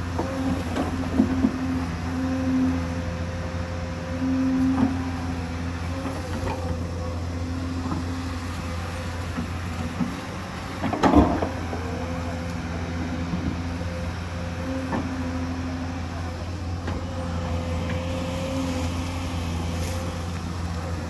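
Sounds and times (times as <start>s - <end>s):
excavator diesel engine running: 0.0s - 21.0s.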